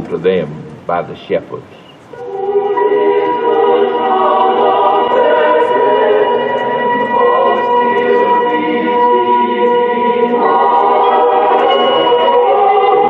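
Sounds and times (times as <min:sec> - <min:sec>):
choir singing a hymn: 0:02.1 - 0:13.0.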